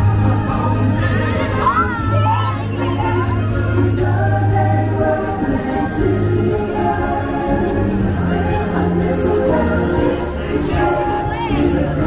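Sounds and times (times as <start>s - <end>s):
parade music with singing: 0.0s - 12.0s.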